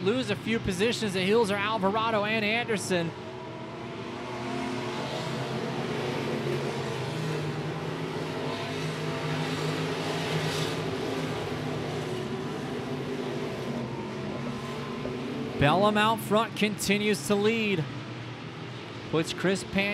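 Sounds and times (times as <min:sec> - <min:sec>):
race car engines roaring: 0:00.0 - 0:19.9.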